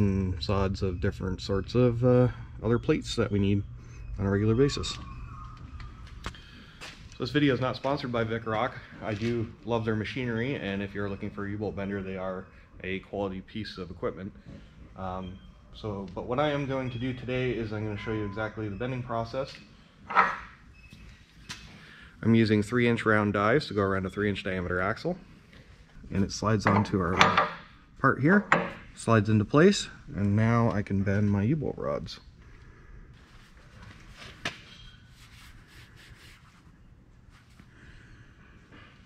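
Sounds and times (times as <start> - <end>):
heavy steel die clanking: 26.6 - 27.7.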